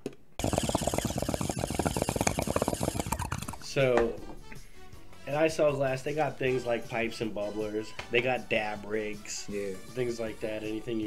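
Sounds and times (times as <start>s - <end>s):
rapid dense clicking: 0.4s - 3.7s.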